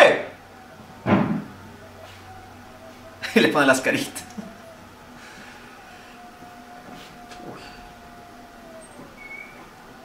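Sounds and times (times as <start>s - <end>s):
background hum: 0.0s - 10.0s.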